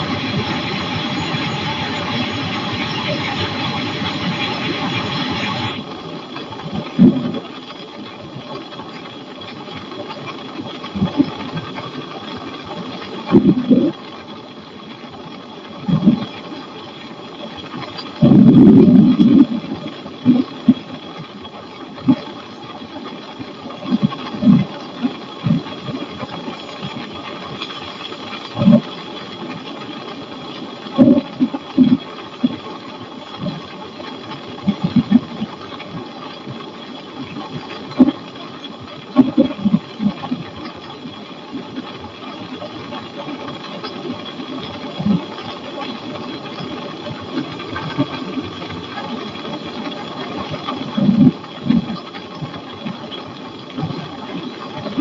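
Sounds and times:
microlight engine and propeller droning: 0.0 - 55.0.

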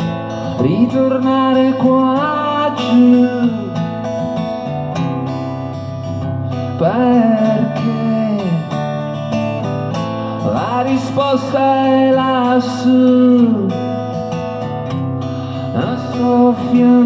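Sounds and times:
acoustic guitar strumming chords: 0.0 - 17.0.

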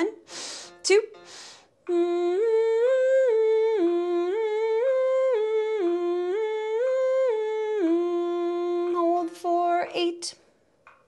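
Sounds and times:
sharp breath sounds: 0.3 - 1.8
woman humming scale notes: 1.9 - 9.3.

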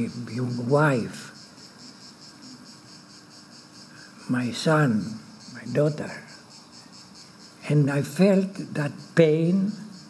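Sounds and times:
insects chirping in pulses: 0.0 - 10.0.

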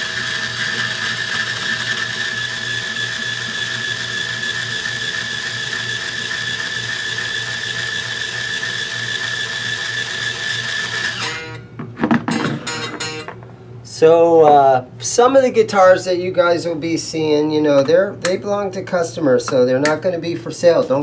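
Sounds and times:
power string winder whining: 0.0 - 13.4.

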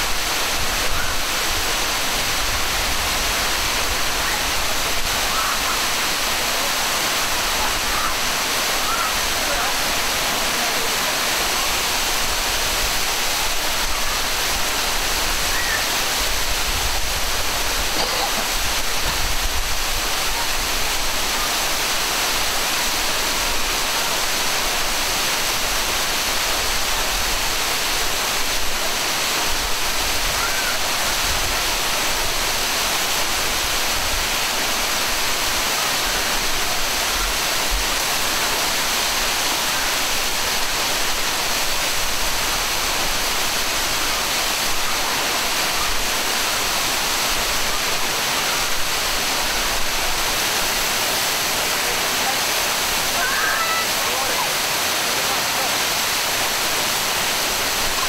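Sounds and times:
waterfall splashing onto rocks: 0.0 - 58.0.

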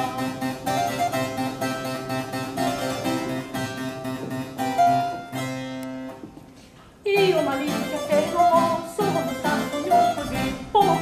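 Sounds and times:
harpsichord music: 0.0 - 6.1, 7.2 - 11.0.

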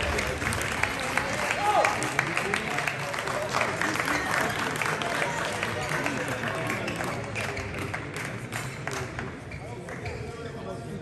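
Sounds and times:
spectators clapping: 0.0 - 10.1.

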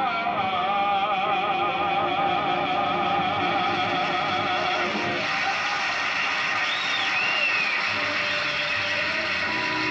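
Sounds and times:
audience applauding: 3.8 - 9.9
person whistling: 6.6 - 9.9.

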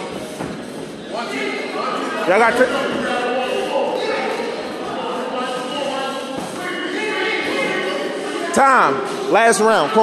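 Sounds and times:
indistinct voices echoing: 0.0 - 10.0.

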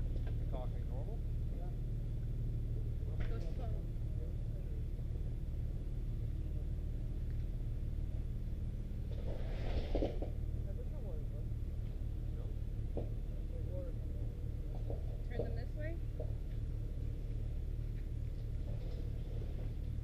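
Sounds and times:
engine low drone: 0.0 - 20.0
faint indistinct voices: 10.2 - 17.4.

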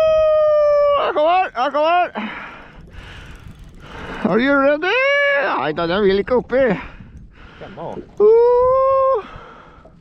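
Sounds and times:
man crying out excitedly: 0.0 - 2.0, 8.2 - 9.3.

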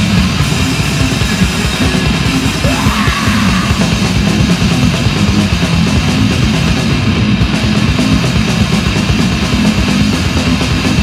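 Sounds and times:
distorted guitar and bass: 0.0 - 11.0
fast drums: 0.0 - 11.0.

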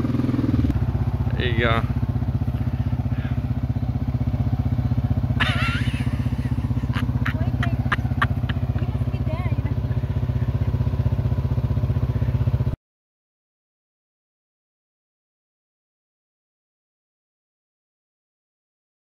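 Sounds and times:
atv engines idling: 0.0 - 12.8.

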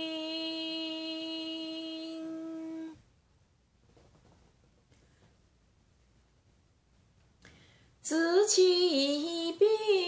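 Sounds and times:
woman humming a steady note: 0.0 - 3.0.

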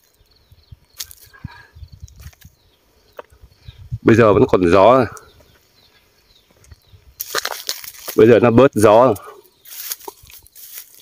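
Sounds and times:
leaves rustling: 0.9 - 1.4, 6.5 - 11.0.

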